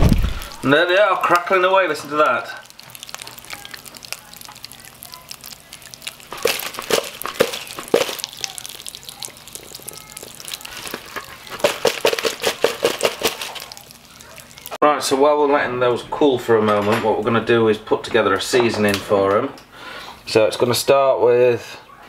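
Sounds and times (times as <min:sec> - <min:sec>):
pork rinds crackling and popping: 0:00.0 - 0:14.8.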